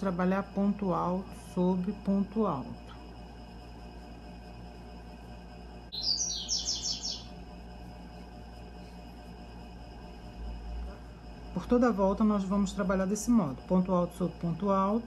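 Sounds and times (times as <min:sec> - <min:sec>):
faint room hum: 0:00.0 - 0:15.0
bird chirping rapid high notes: 0:05.9 - 0:07.3.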